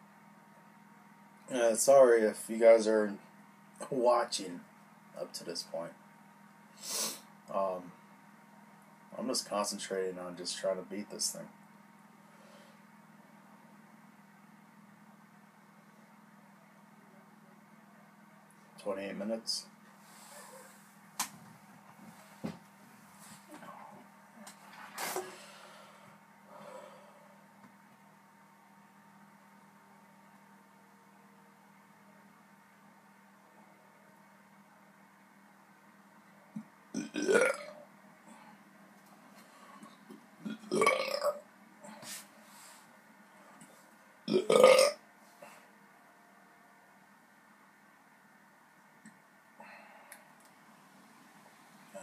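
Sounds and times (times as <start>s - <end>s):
man burping: 37.0s - 37.8s, 40.4s - 41.4s, 44.3s - 45.0s.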